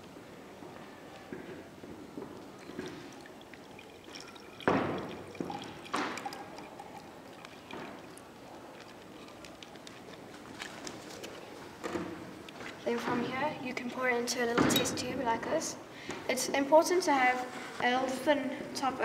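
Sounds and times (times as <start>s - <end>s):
liquid poured into glass jug: 2.3s - 10.3s.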